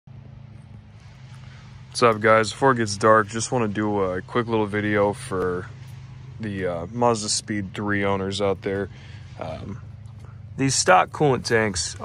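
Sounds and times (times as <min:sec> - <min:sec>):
low engine hum: 0:00.1 - 0:12.0.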